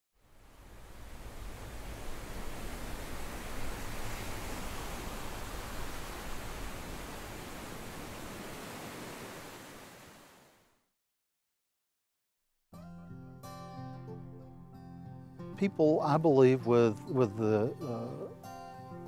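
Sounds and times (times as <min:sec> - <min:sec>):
steady rushing noise: 0:00.4 - 0:10.2.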